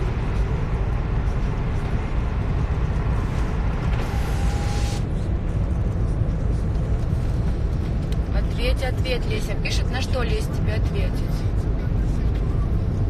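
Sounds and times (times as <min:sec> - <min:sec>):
car road and engine noise: 0:00.0 - 0:13.0.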